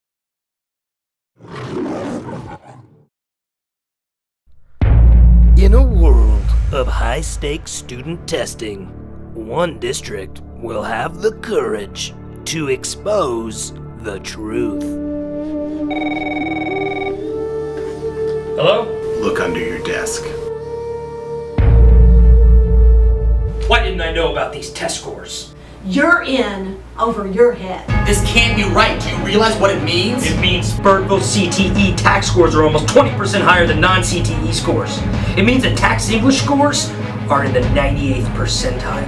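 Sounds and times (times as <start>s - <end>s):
lion roaring: 1.4s - 3.0s
background music: 4.8s - 39.0s
desk telephone ringing: 15.9s - 17.2s.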